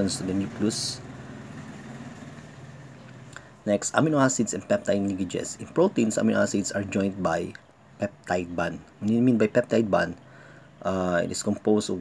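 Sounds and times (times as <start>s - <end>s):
soft background hiss: 0.0s - 12.0s
steady low hum: 0.0s - 12.0s.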